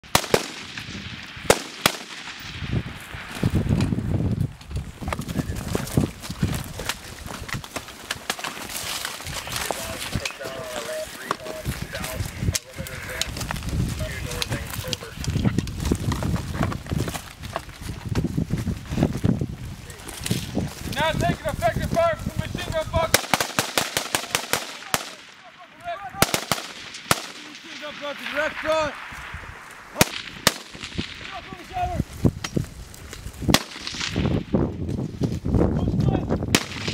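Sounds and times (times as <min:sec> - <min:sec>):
rifle and machine-gun shots: 0:00.0 - 0:03.4, 0:23.1 - 0:25.5, 0:26.2 - 0:31.7, 0:33.5 - 0:34.5, 0:36.5 - 0:36.9.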